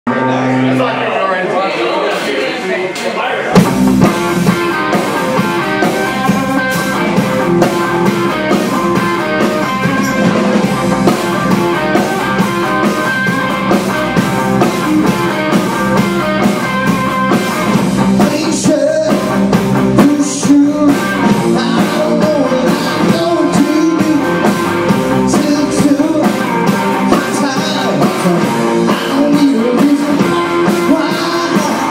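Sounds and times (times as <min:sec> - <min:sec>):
drum kit beat: 0:03.5 - 0:31.9
electric bass: 0:03.5 - 0:31.9
electric guitar: 0:03.5 - 0:31.9.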